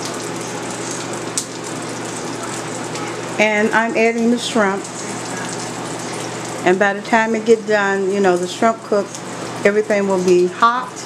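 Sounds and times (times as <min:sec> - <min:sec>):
water bubbling at a rolling boil: 0:00.0 - 0:11.0.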